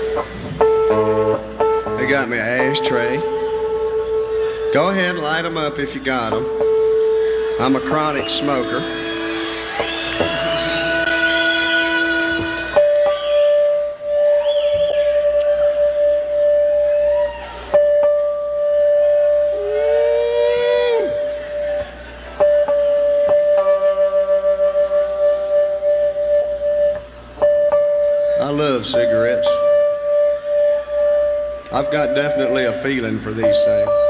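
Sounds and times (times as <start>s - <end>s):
musicians tuning up: 0.0s - 34.0s.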